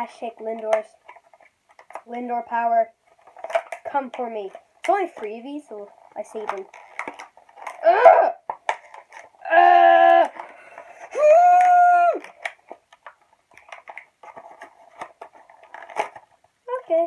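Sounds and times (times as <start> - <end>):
cardboard box crinkling: 3.1 - 3.9, 6.0 - 7.8, 8.4 - 9.4, 12.2 - 16.4.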